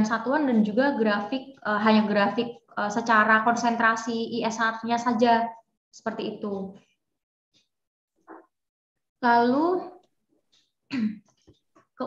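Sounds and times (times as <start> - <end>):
woman clearing her throat: 10.9 - 11.2.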